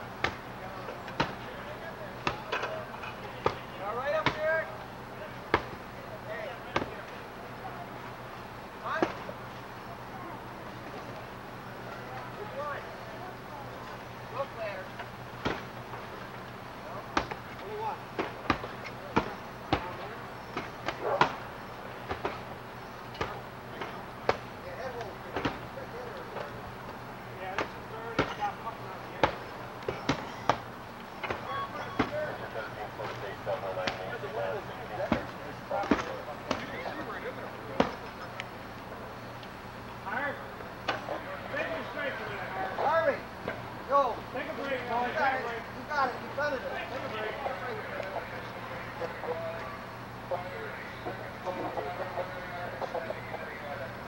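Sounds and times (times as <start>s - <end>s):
voices calling: 0.0s - 54.0s.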